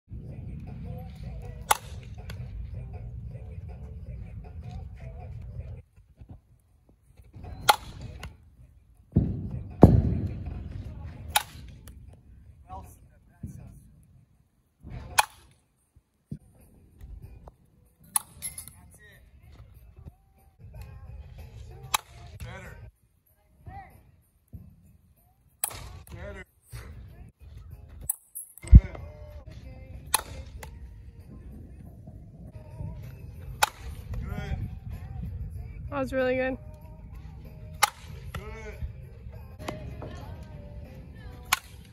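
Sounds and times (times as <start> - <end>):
bat hitting softballs: 0.4 - 3.1, 7.2 - 8.4, 9.0 - 12.2, 14.9 - 15.6, 18.0 - 18.8, 20.7 - 22.6, 25.6 - 27.0, 27.9 - 31.5, 32.6 - 35.2, 36.8 - 41.9
bat striking softball: 1.4 - 2.5, 7.4 - 8.4, 9.1 - 12.0, 14.9 - 15.6, 21.8 - 22.4, 25.6 - 26.2, 30.0 - 30.8, 33.0 - 34.2, 37.5 - 38.6, 39.6 - 40.2, 41.3 - 41.9
heavy low thump: 9.1 - 10.9.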